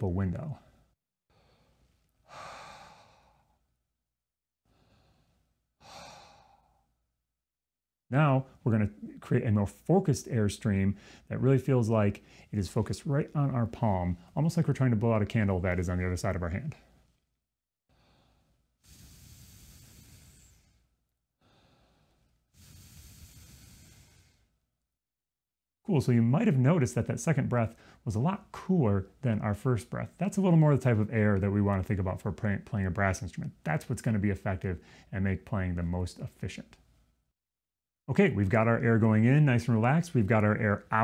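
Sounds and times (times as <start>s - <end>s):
faint breath in: 0.6s - 3.7s, 4.7s - 6.9s, 11.0s - 11.3s, 17.9s - 24.6s
man exhaling through open mouth: 2.3s - 3.6s, 4.7s - 6.9s, 18.0s - 24.6s
man blowing air through lips: 17.9s - 24.6s.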